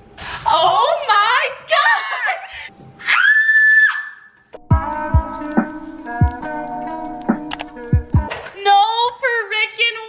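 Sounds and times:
women screaming with excitement: 0:03.0 - 0:04.3.

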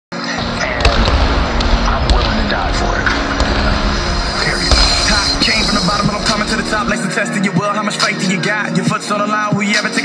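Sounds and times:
basketball bouncing on hardwood: 0:00.6 - 0:06.8.

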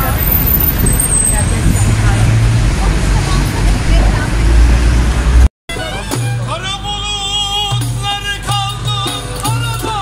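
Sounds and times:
people talking in a crowd: 0:00.0 - 0:05.0, 0:05.7 - 0:10.0
low traffic rumble: 0:00.0 - 0:10.0.

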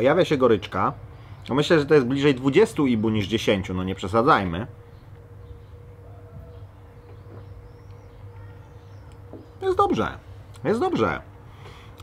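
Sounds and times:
steady low hum: 0:00.0 - 0:12.0
distant bird chirps: 0:02.3 - 0:11.9.

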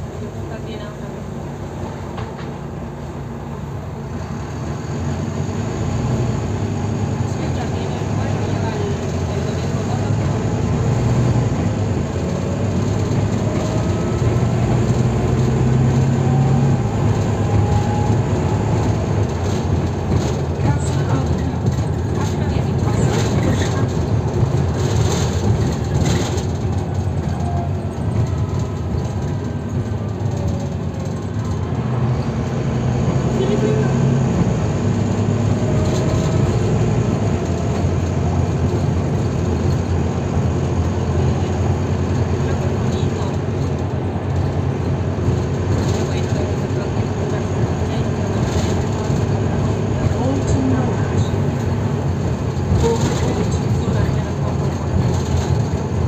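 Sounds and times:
diesel bus engine droning: 0:00.0 - 0:56.0
road and body noise: 0:00.0 - 0:56.0.

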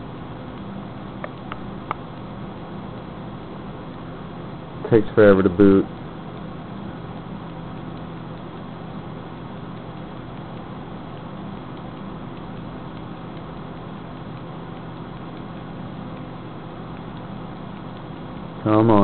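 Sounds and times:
computer cooling fans humming: 0:00.0 - 0:19.0.

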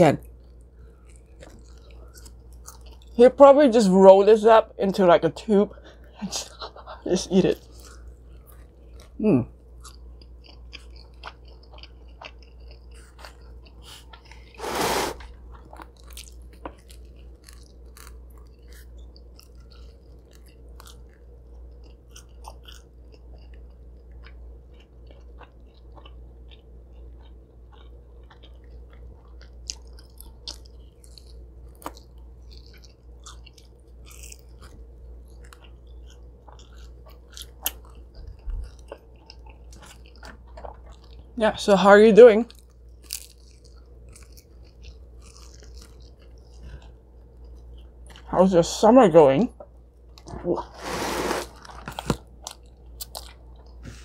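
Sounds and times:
steady low hum: 0:00.0 - 0:54.0
person chewing food: 0:00.2 - 0:03.2, 0:05.7 - 0:41.4, 0:42.5 - 0:48.3, 0:49.6 - 0:54.0.

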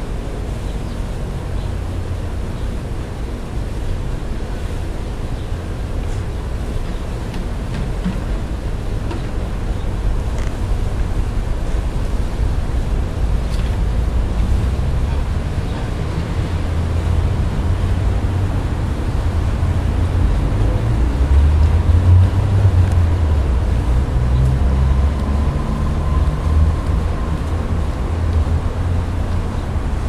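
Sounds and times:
steady low rumble: 0:00.0 - 0:30.0.

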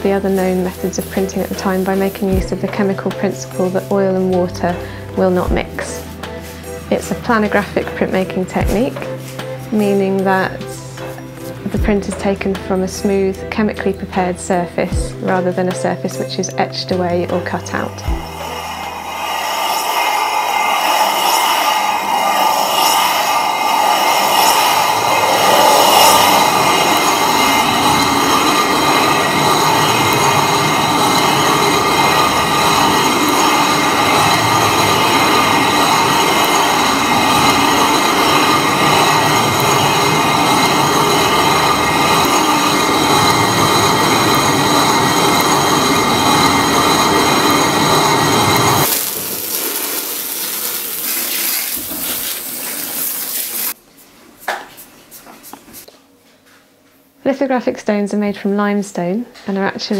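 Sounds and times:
faint whine: 0:17.7 - 0:50.9
stone grinding scrape: 0:18.1 - 0:53.8.

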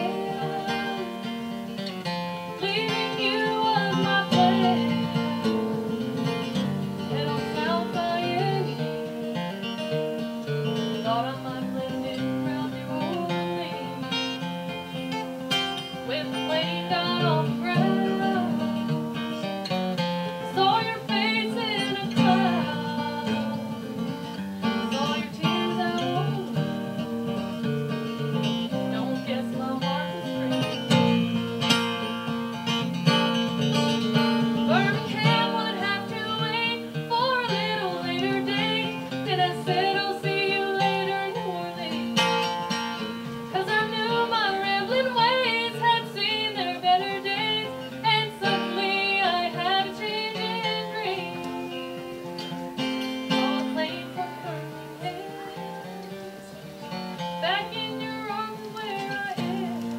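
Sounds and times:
strummed acoustic guitar: 0:00.0 - 0:59.9
woman singing a folk song: 0:00.0 - 0:59.9.

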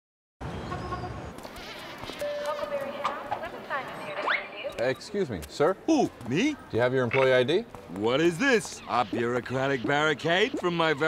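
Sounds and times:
murmur of overlapping voices: 0:01.4 - 0:11.0.

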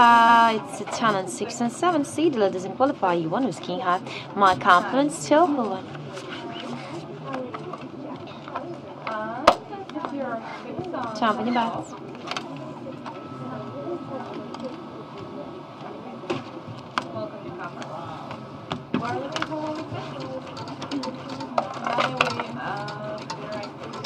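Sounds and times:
indistinct background talk: 0:00.0 - 0:24.0.

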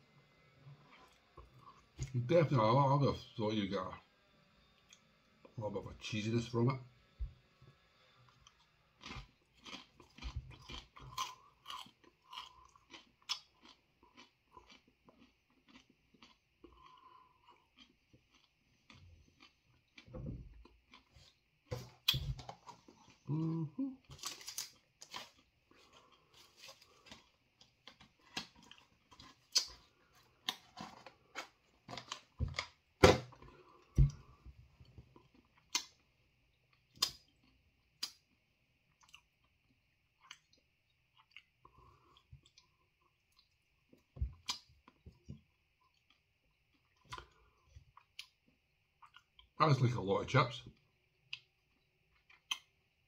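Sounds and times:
crunchy chip chewing: 0:09.0 - 0:20.1.

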